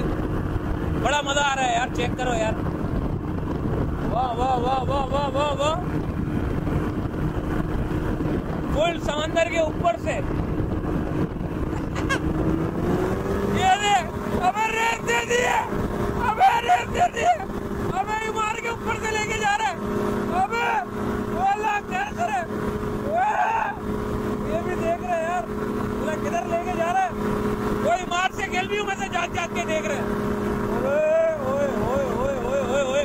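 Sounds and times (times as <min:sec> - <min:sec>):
paramotor engine drone: 0:00.0 - 0:33.0.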